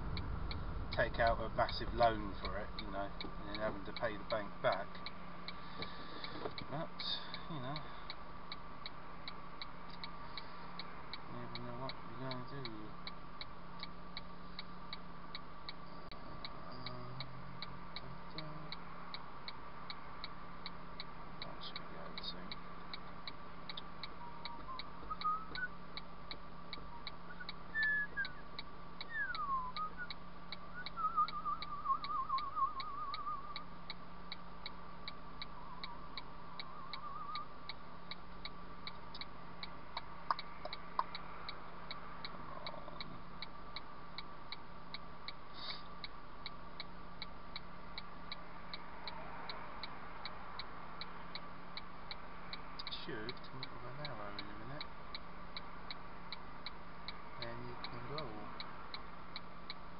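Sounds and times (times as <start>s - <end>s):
car engine idling: 0.0s - 48.8s
turn-signal indicator ticking: 0.0s - 59.9s
high whistled chirps: 24.2s - 25.8s, 26.9s - 33.7s, 36.6s - 37.6s.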